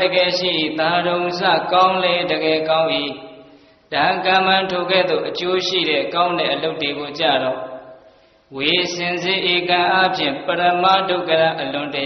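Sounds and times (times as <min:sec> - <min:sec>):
person chanting in long held tones: 0:00.0 - 0:07.8, 0:08.5 - 0:12.0.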